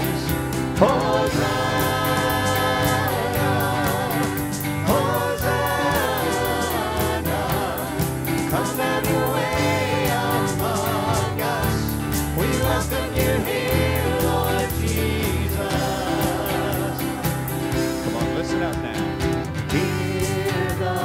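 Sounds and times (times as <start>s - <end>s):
mixed voices singing a hymn: 0.0s - 18.7s, 19.6s - 21.0s
acoustic and electric guitar: 0.0s - 21.0s
steady beat: 0.0s - 21.0s.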